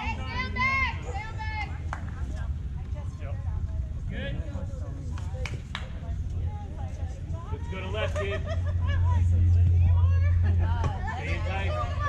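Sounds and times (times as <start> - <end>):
chatter of people talking: 0.0 - 12.0
steady low rumble: 0.0 - 12.0.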